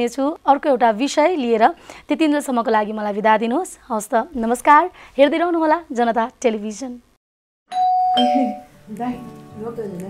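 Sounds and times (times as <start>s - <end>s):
doorbell ding-dong chime: 7.7s - 8.7s.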